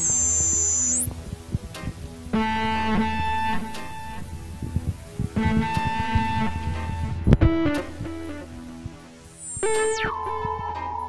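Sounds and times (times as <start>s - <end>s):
plucked guitar chord: 2.4s - 9.0s.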